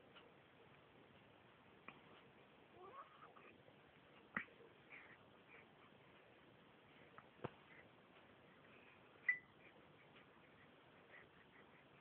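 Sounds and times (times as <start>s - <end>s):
baby cooing: 2.8s - 3.6s.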